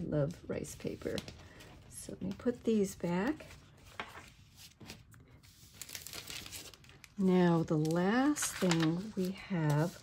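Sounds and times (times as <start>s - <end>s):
paper sheets rustling: 0.5s - 10.0s.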